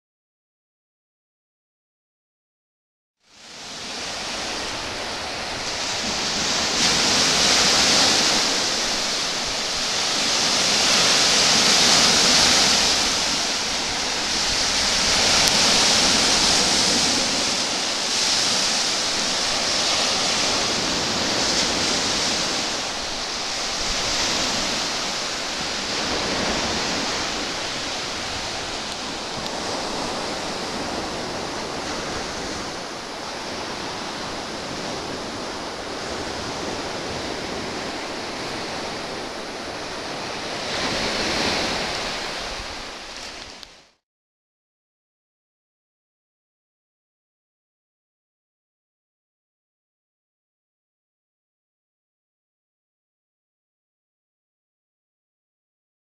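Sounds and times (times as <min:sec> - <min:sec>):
waves breaking on a sandy beach: 0:03.3 - 0:44.0.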